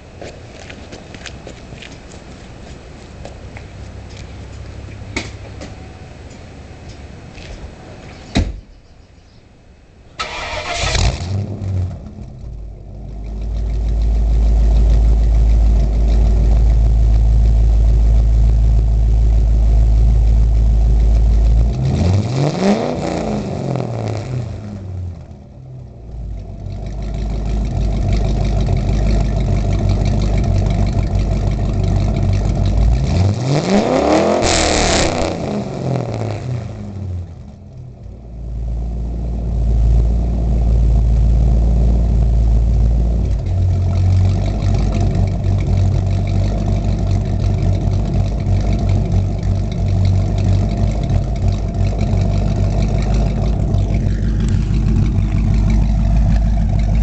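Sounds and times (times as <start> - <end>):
car engine idling: 0.0 - 34.4, 35.0 - 57.0
car engine revving: 10.2 - 25.4, 26.2 - 37.7, 38.5 - 57.0.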